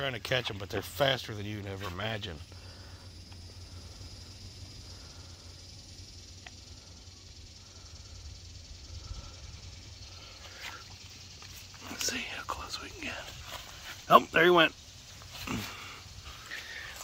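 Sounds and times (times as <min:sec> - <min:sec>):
faint high hiss: 0:00.0 - 0:17.0
faint click: 0:06.4 - 0:06.6.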